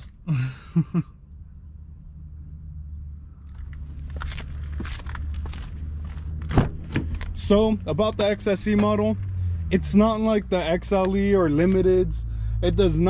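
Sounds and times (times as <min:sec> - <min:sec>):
footsteps: 0:03.5 - 0:07.1.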